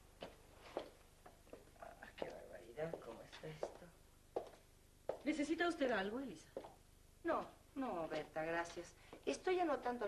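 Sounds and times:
footsteps on hard floor: 0:00.2 - 0:05.3.

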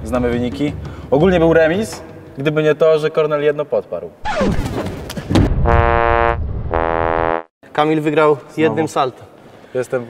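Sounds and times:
electronic buzzer tones: 0:05.7 - 0:07.5.

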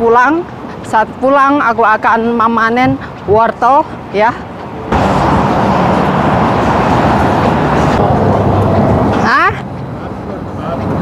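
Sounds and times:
roadside traffic noise: 0:00.0 - 0:11.0.

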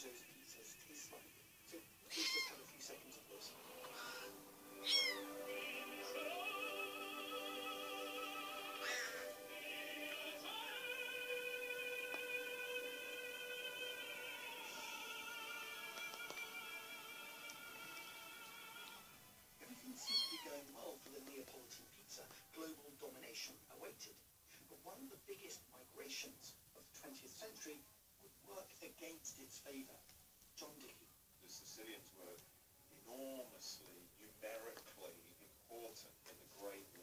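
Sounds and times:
kitten mewing: 0:02.1 - 0:02.6, 0:04.8 - 0:05.4, 0:19.9 - 0:20.6
music with sung notes: 0:03.5 - 0:19.3.

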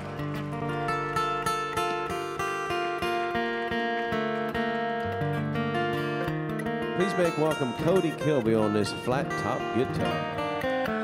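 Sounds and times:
acoustic guitar picking: 0:00.0 - 0:11.0
bluegrass band playing: 0:06.9 - 0:10.6.

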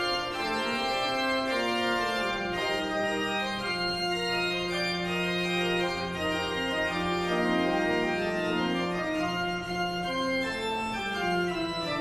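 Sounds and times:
pipe organ playing slow music: 0:00.0 - 0:12.0.

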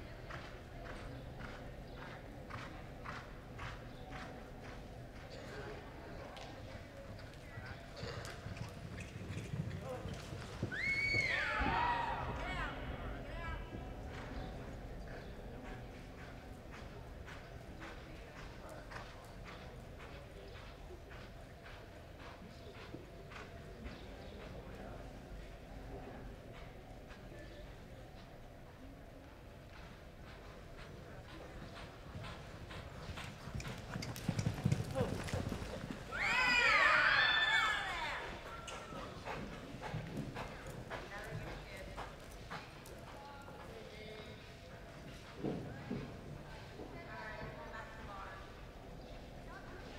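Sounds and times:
horse hoofbeats on soft dirt: 0:00.1 - 0:49.9.

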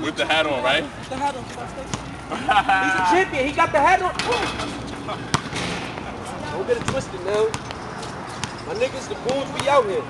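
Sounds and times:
men's voices: 0:02.3 - 0:10.0
basketball smacking on asphalt: 0:05.3 - 0:06.1, 0:06.8 - 0:07.8.

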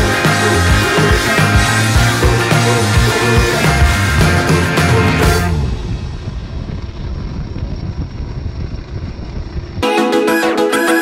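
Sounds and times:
music: 0:00.0 - 0:06.0, 0:09.8 - 0:11.0
boat engine: 0:00.0 - 0:11.0
wind noise: 0:02.1 - 0:09.9.

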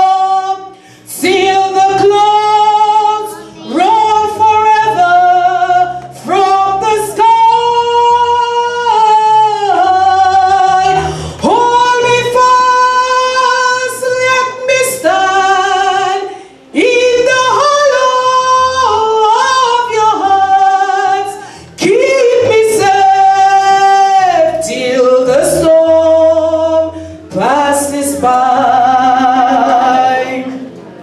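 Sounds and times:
woman singing gospel: 0:00.0 - 0:30.7
singer breathing: 0:00.7 - 0:01.1, 0:11.0 - 0:11.4, 0:16.3 - 0:16.7, 0:21.4 - 0:21.8, 0:26.9 - 0:27.3.

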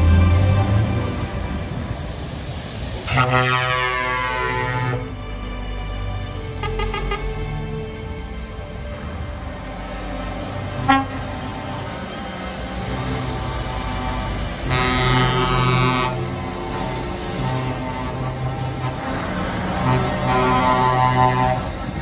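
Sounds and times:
heavy trucks passing: 0:00.0 - 0:22.0
truck air horn: 0:03.0 - 0:05.2, 0:06.5 - 0:07.5, 0:10.7 - 0:12.0, 0:13.3 - 0:22.0.

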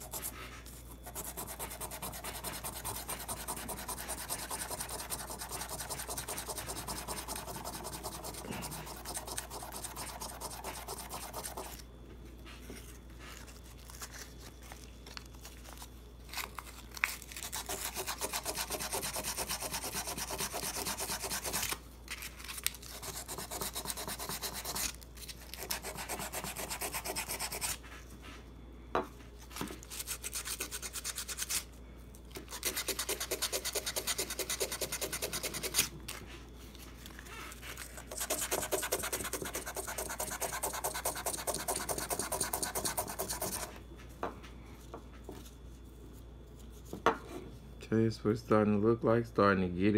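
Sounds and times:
sandpaper scrubbing on metal: 0:01.0 - 0:11.7, 0:17.5 - 0:21.8, 0:37.8 - 0:43.7.

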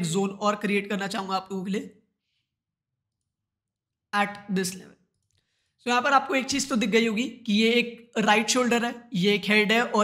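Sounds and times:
person speaking: 0:00.0 - 0:02.1, 0:04.1 - 0:10.0.

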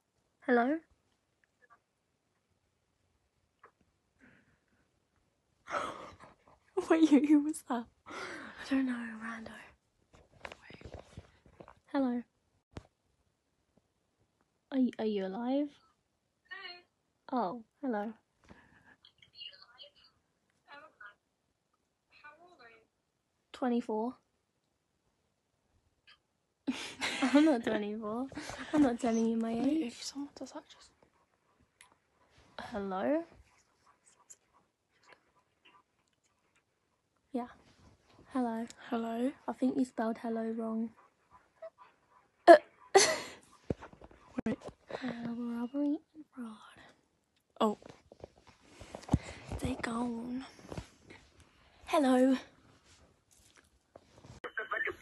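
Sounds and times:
person whispering: 0:46.2 - 0:47.0.

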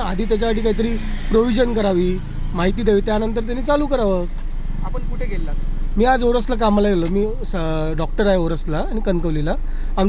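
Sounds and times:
low hum of vehicles: 0:00.0 - 0:10.0
man speaking: 0:00.0 - 0:10.0.

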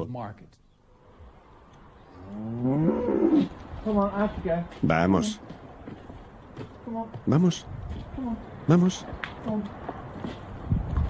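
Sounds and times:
cow mooing: 0:02.2 - 0:03.6.

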